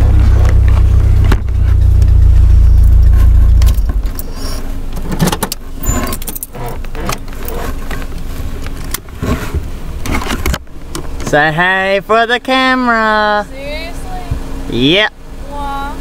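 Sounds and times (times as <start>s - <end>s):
rattling and clicking: 0.0s - 11.4s
car engine rumble: 0.0s - 16.0s.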